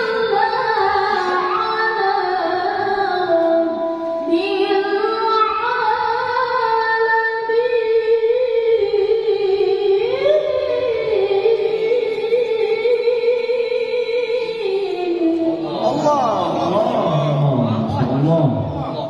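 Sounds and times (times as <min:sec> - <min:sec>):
woman reciting melodically: 0:00.0 - 0:17.1.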